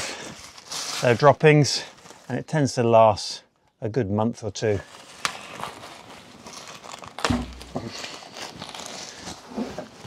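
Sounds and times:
plastic wrapping crinkling: 0:00.0 - 0:02.3, 0:04.7 - 0:10.0
bale thump: 0:07.2 - 0:07.9.

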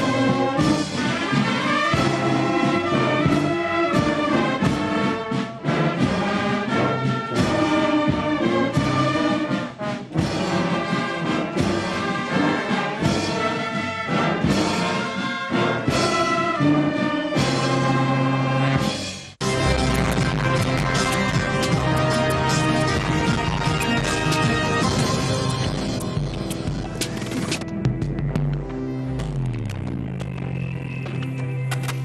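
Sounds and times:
drum beats: 0:00.0 - 0:16.6, 0:18.8 - 0:32.0
brass band playing: 0:00.0 - 0:27.6.

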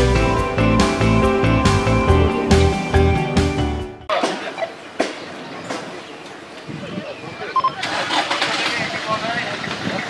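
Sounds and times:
people: 0:04.1 - 0:10.0
traffic: 0:04.1 - 0:10.0.

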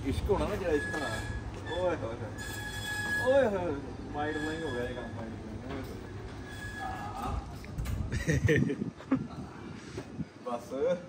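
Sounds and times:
garage door rollers squealing: 0:00.0 - 0:08.0.

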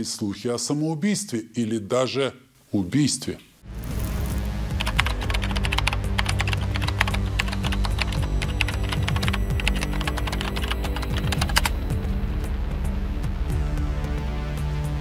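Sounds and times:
low background music: 0:03.6 - 0:15.0
keystroke clicks: 0:04.8 - 0:11.8.

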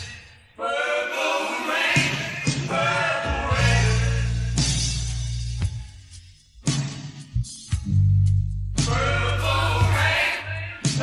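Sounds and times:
drum hits with bass notes: 0:02.0 - 0:11.0.

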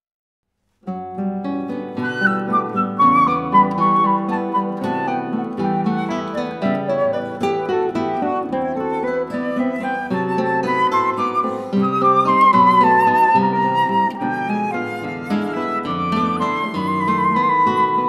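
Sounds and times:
acoustic guitars picking: 0:00.9 - 0:18.0
flute melody: 0:01.9 - 0:18.0.

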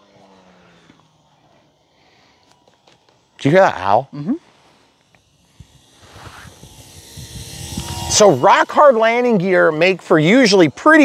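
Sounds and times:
electric motor and propeller hum: 0:00.0 - 0:11.0
faint outdoor hiss: 0:00.0 - 0:11.0.

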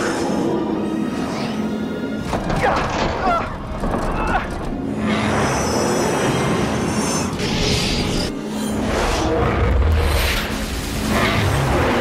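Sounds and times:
dramatic soundtrack music: 0:00.0 - 0:12.0
dense mechanical noise effects: 0:03.6 - 0:12.0.

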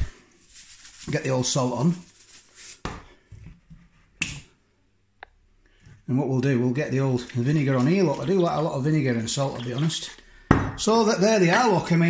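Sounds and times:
salt grains hissing onto chips: 0:00.0 - 0:02.8.

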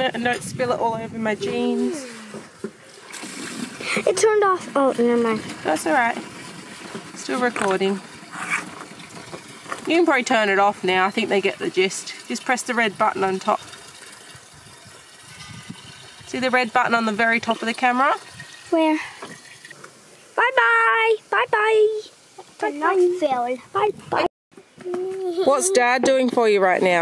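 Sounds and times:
fuel pouring into plastic tank: 0:02.2 - 0:04.2, 0:05.4 - 0:09.9, 0:11.2 - 0:19.8.

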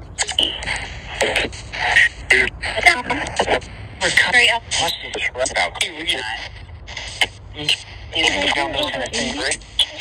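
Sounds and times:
radio static: 0:00.1 - 0:10.0
radio voice fragments: 0:00.2 - 0:10.0.

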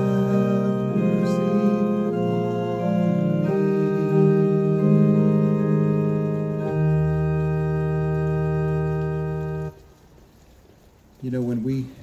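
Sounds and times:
electronic organ chord: 0:00.0 - 0:09.8.

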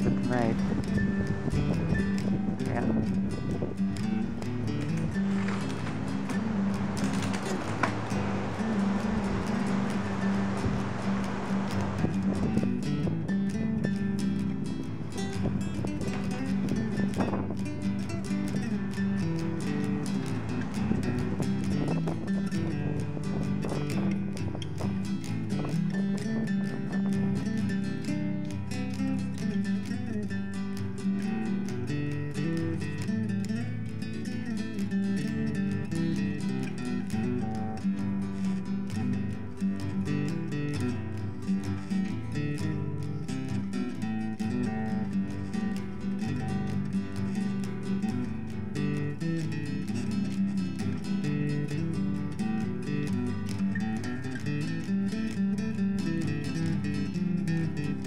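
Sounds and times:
acoustic guitar picked and strummed: 0:00.0 - 0:58.0.

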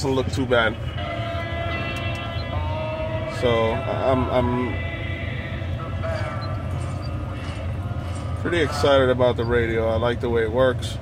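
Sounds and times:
low steady rumble: 0:00.0 - 0:11.0
sustained chord through car speakers: 0:00.0 - 0:11.0.

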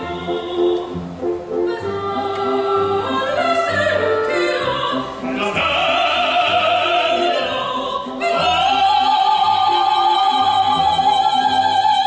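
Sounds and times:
operatic singing: 0:00.0 - 0:12.0
orchestral accompaniment: 0:00.0 - 0:12.0.

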